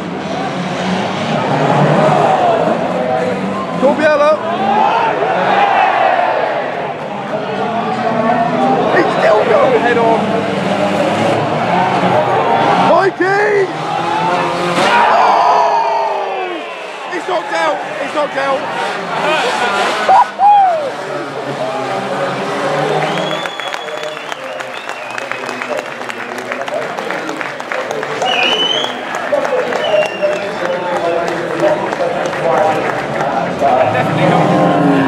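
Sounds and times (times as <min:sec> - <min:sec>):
racing car engines revving: 0:00.0 - 0:35.0
spectators' voices: 0:00.0 - 0:35.0.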